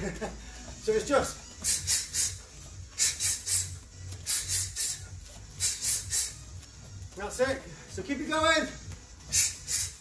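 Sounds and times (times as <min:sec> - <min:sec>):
hissing exhales through teeth: 0:03.0 - 0:06.4, 0:09.3 - 0:10.0.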